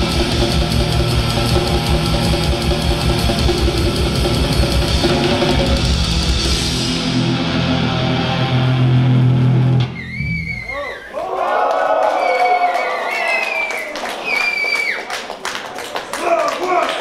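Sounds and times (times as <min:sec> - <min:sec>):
distorted metal band chord: 0:00.0 - 0:09.9
audience cheering and whistling: 0:01.1 - 0:03.5, 0:09.8 - 0:15.3
audience clapping: 0:10.7 - 0:17.0.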